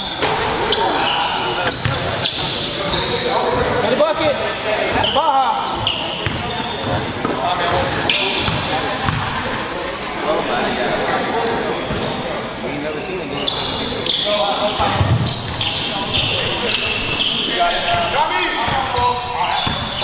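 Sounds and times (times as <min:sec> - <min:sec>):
sneakers squeaking: 0:00.0 - 0:09.8, 0:11.4 - 0:20.0
shouts and chatter echoing: 0:00.0 - 0:20.0.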